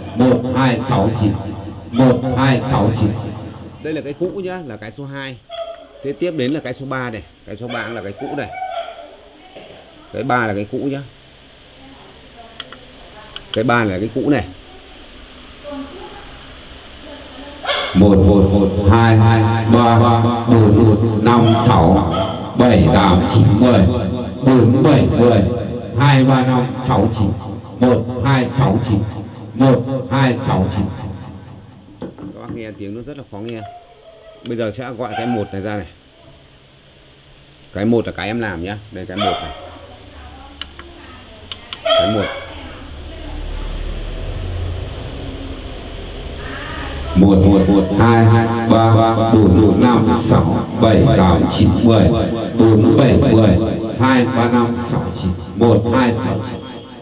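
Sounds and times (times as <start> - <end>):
man's voice with echo: 0.0 - 5.0, 7.6 - 8.6, 17.9 - 31.8, 34.7 - 36.0, 38.6 - 39.6, 47.1 - 57.0
sound system hum: 0.0 - 57.0.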